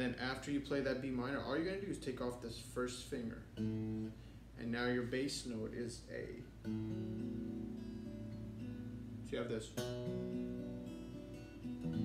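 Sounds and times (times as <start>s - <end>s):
acoustic guitar fingerpicked chord: 3.6s - 4.4s, 6.6s - 12.0s.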